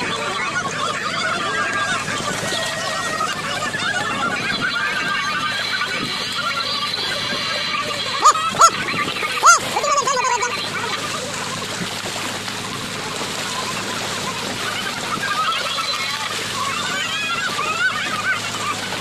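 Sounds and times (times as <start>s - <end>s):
fish splashing in water: 0.0s - 19.0s
sharp high-pitched calls: 8.2s - 8.8s, 9.4s - 10.5s.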